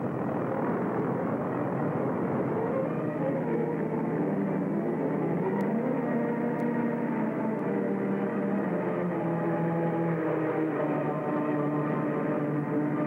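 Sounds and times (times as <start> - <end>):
propeller aircraft engines droning: 0.0 - 13.0.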